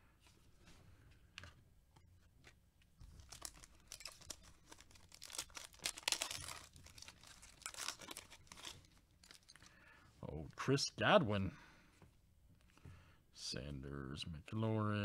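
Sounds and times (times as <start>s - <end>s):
foil wrapper tearing and crinkling: 3.1s - 9.7s.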